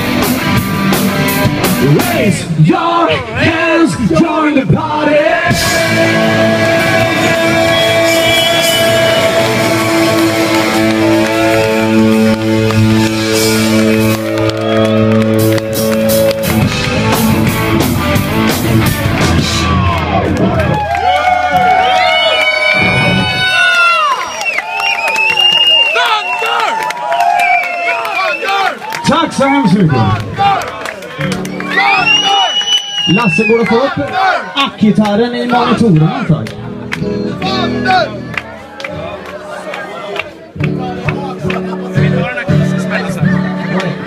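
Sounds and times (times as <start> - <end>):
electric guitar and bass chord: 5.5 - 20.6
crowd cheering and whistling: 5.6 - 18.2, 18.9 - 35.0, 36.8 - 39.7.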